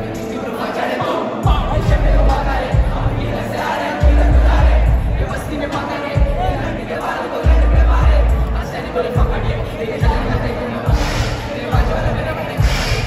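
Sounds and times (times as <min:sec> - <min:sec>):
loud rap music: 0:00.0 - 0:13.0
deep bass notes: 0:01.4 - 0:13.0.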